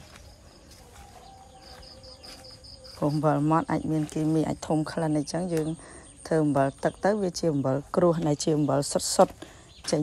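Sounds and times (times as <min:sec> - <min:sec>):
faint high-pitched chirping: 0:00.0 - 0:10.0.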